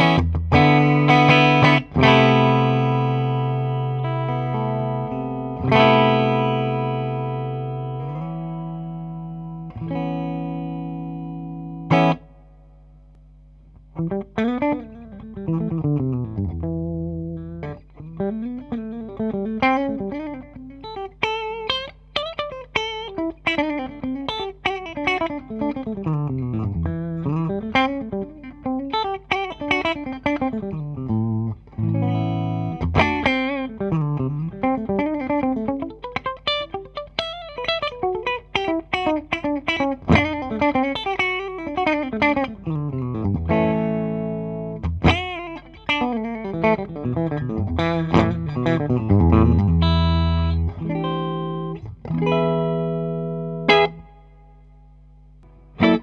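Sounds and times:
clean electric guitar runs and arpeggios: 0:00.0 - 0:12.4, 0:13.7 - 0:54.6, 0:55.4 - 0:56.0.

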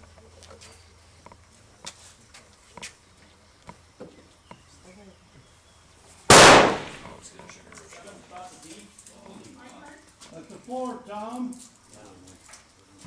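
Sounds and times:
loud rifle shot: 0:06.3 - 0:07.2.

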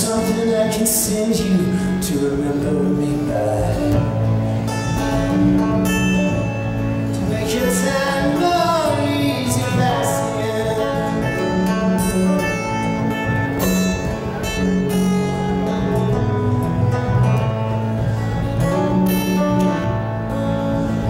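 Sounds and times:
acoustic guitar picking: 0:00.0 - 0:21.0.

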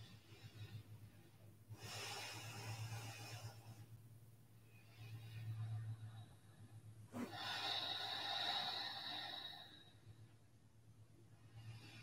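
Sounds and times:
person breathing slowly: 0:00.0 - 0:04.0, 0:04.6 - 0:10.4
low electrical hum: 0:00.0 - 0:12.0.

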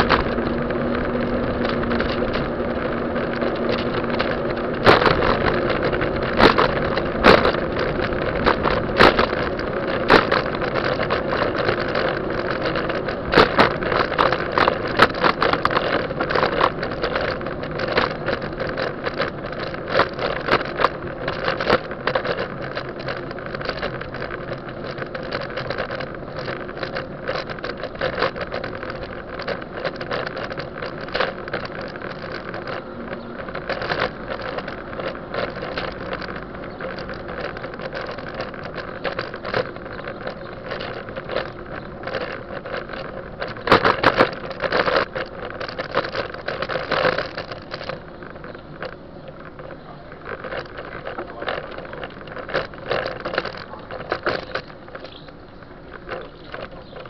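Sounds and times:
bicycle rattling over road: 0:00.0 - 0:57.0
knocks and clicks from road: 0:00.0 - 0:57.0
wind over microphone: 0:00.0 - 0:57.0.

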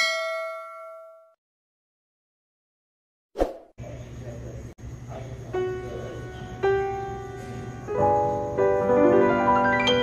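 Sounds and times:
notification bell ding: 0:00.0 - 0:01.4.

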